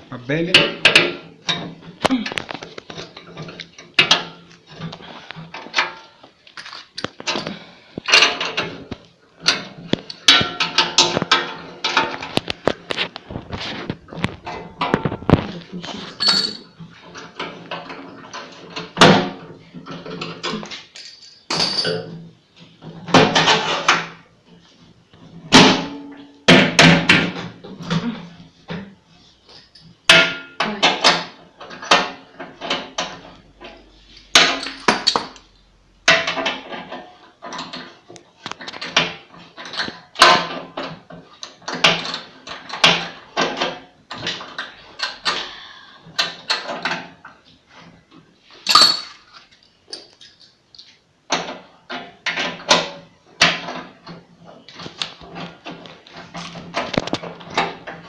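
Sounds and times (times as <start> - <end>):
metal parts and tools clanking: 0.4 - 45.5, 46.2 - 58.0.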